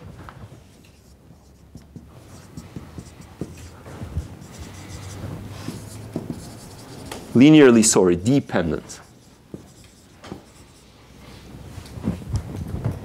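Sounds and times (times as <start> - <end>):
marker scratching on whiteboard: 0.7 - 11.0.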